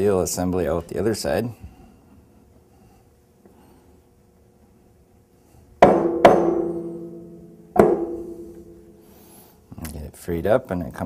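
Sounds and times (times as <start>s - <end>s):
sharp ringing metallic knock: 5.8s - 8.9s.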